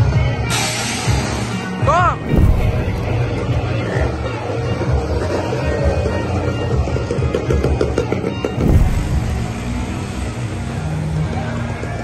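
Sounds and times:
bass-heavy music: 1.9 - 4.5, 8.5 - 10.8.

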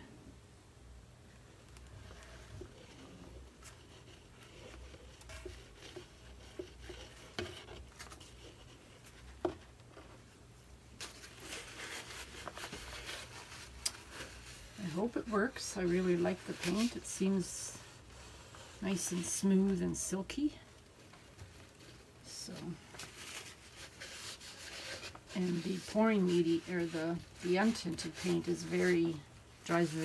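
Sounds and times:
low room hum: 0.0 - 30.0.

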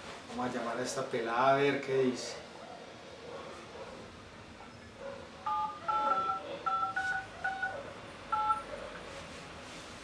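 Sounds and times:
phone keypad touch-tones: 5.5 - 8.7.

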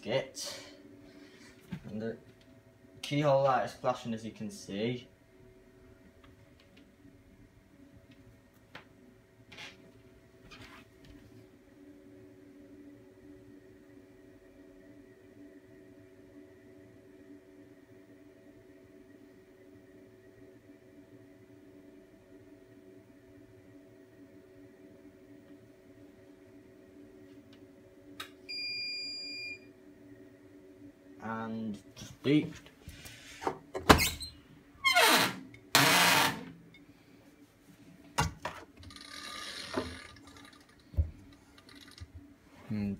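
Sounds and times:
faint steady hum: 0.0 - 42.9
high electronic appliance beep: 28.5 - 29.7.

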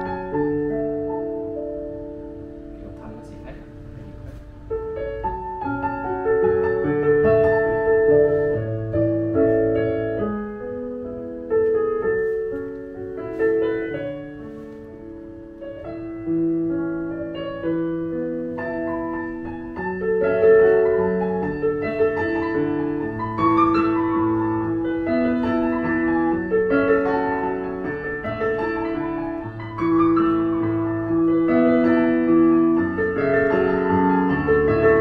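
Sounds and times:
digital piano played slowly: 0.0 - 35.0.

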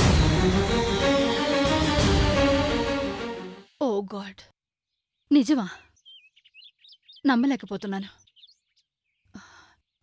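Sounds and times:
woman speaking: 3.8 - 4.5, 5.3 - 5.8, 7.2 - 8.2
small bird chirping: 4.9 - 10.0.

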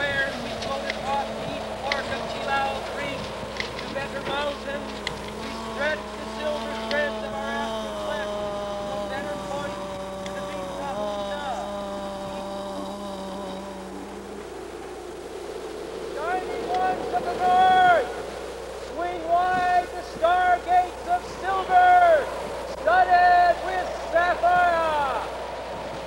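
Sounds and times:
long wavering held tones: 0.0 - 26.0
low steady drone: 0.0 - 26.0.

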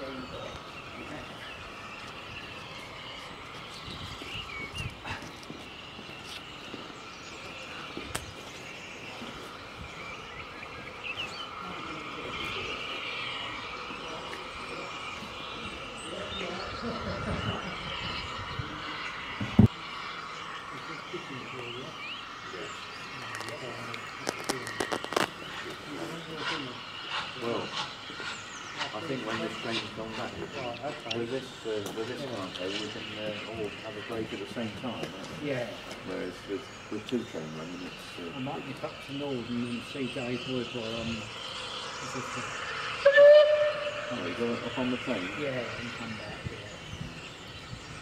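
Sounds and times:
steam locomotive hissing steam: 0.0 - 48.0.

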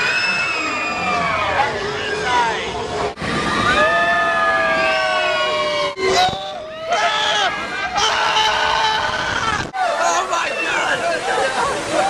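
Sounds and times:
people screaming together: 0.0 - 2.4, 3.4 - 11.1.

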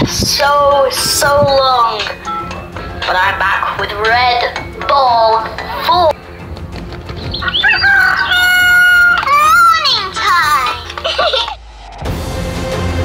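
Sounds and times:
high crowing cry: 7.4 - 10.6.

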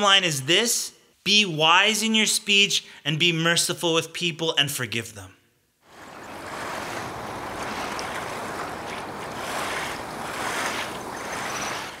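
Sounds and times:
steady rushing noise: 5.8 - 12.0.

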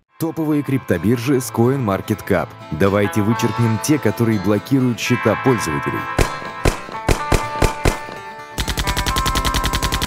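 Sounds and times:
background music: 0.0 - 10.0
single gunshots: 6.2 - 8.2
machine-gun fire: 6.2 - 10.0.

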